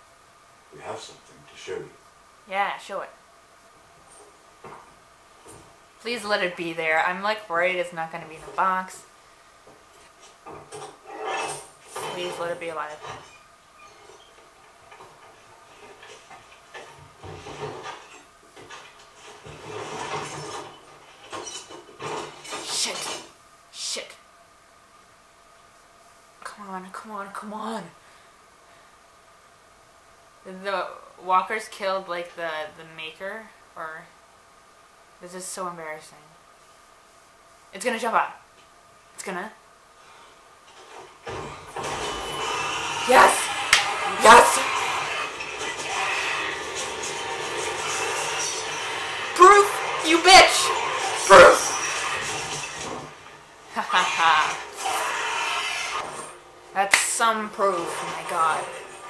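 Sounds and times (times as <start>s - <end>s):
scraping and knocking: 9.7s - 23.3s.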